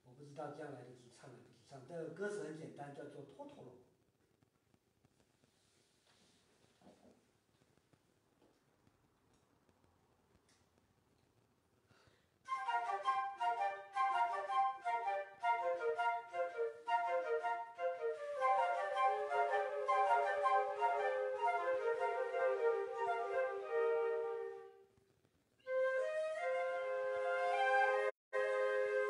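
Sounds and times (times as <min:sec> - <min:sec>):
flute ensemble playing: 0:12.5 - 0:24.8, 0:25.6 - 0:29.0.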